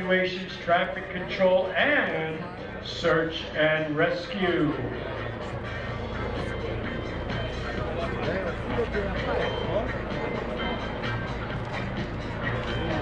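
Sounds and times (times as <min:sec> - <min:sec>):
helicopter low hum: 0:00.0 - 0:13.0
music with singing over loudspeakers: 0:00.0 - 0:13.0.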